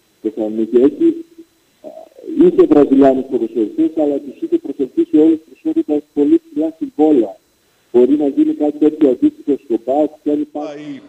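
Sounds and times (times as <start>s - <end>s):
man talking: 0.2s - 7.4s, 8.0s - 11.0s.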